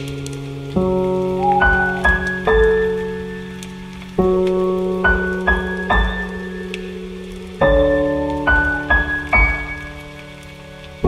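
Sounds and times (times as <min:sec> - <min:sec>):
faint patter like rain: 0:00.0 - 0:11.0
slow soft piano music: 0:00.0 - 0:11.0.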